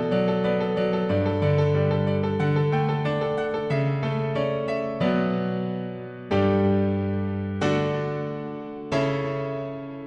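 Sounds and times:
piano chords on keyboard: 0:00.0 - 0:10.0.

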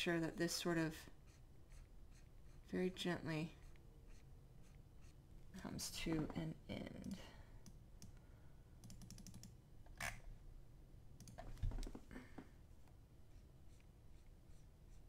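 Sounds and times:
computer keys clicking: 0:08.8 - 0:09.6, 0:11.2 - 0:11.4.

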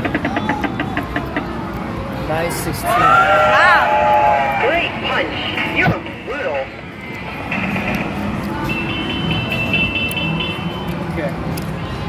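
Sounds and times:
murmur of background chatter: 0:00.0 - 0:12.0.

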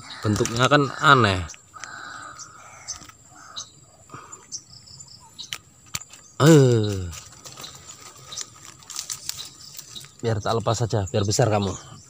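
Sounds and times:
insects droning: 0:00.0 - 0:12.0.

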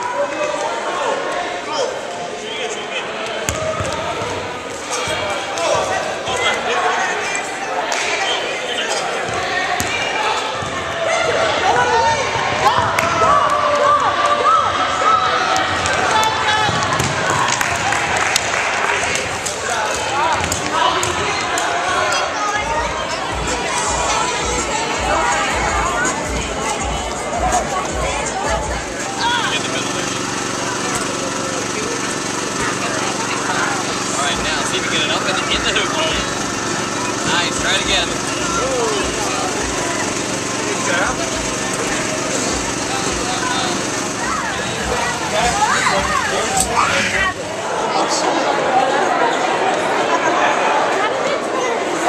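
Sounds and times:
crowd chatter: 0:00.0 - 0:52.0
basketballs bouncing on wood floor: 0:03.5 - 0:04.4, 0:12.1 - 0:13.4, 0:16.6 - 0:17.5
air blower motor hum: 0:23.1 - 0:48.0.

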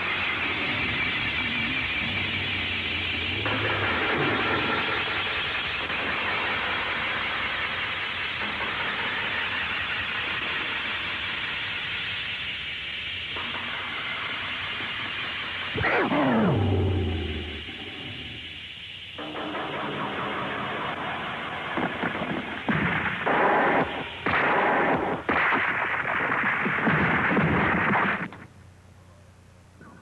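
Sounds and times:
steady hiss: 0:00.0 - 0:30.0
sharp bursts: 0:13.2 - 0:19.7.

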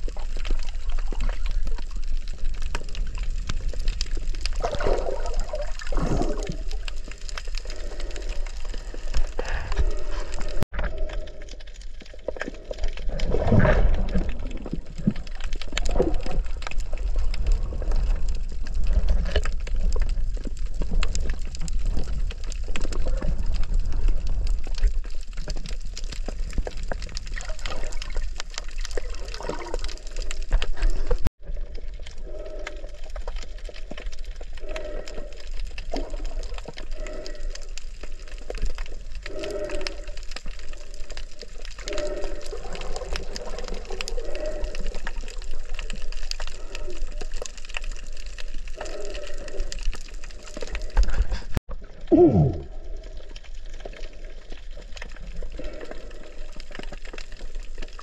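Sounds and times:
underwater sloshing and rushing water: 0:00.0 - 0:58.0
water swishes: 0:00.0 - 0:58.0.

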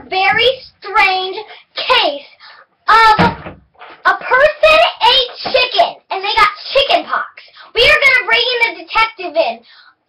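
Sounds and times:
girl's voice: 0:00.0 - 0:10.0.

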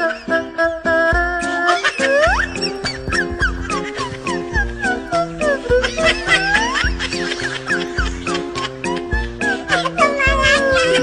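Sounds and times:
upbeat background music: 0:00.0 - 0:11.0
gliding cry: 0:01.8 - 0:08.4.

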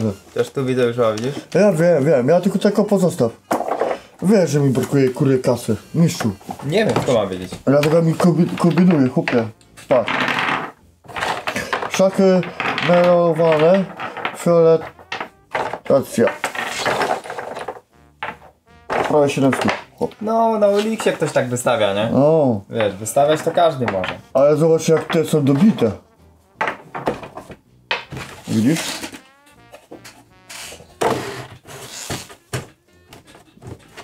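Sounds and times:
wooden chess pieces clattering: 0:03.5 - 0:05.3, 0:06.1 - 0:20.2, 0:20.8 - 0:21.4, 0:22.8 - 0:26.0, 0:26.6 - 0:30.2.

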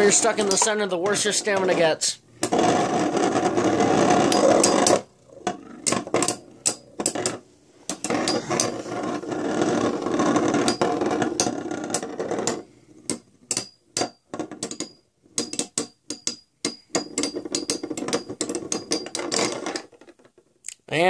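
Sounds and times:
spinning tops grinding together: 0:02.4 - 0:12.7.

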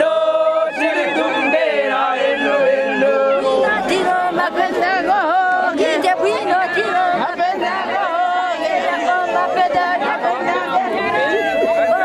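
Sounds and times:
women singing and calling out: 0:00.0 - 0:12.0.

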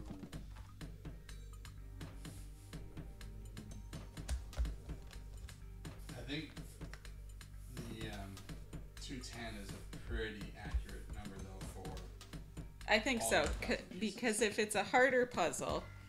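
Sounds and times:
background music: 0:00.0 - 0:16.0.

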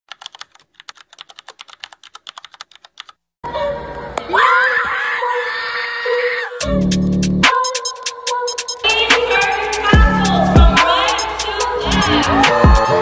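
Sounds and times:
keyboard typing clicks: 0:00.1 - 0:03.2
arena crowd cheering: 0:10.7 - 0:13.0.

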